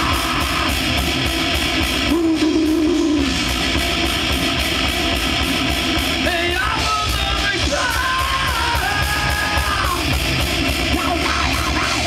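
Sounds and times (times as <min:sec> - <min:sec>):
harsh yelled vocal: 0:00.0 - 0:01.1, 0:06.2 - 0:10.2, 0:10.8 - 0:12.0
bass guitar: 0:00.0 - 0:12.0
distorted electric guitar: 0:00.0 - 0:12.0
fast dense drumming: 0:00.0 - 0:12.0.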